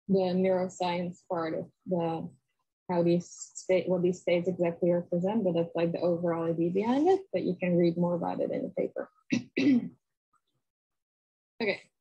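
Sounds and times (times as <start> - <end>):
woman clearing her throat: 9.3 - 10.0.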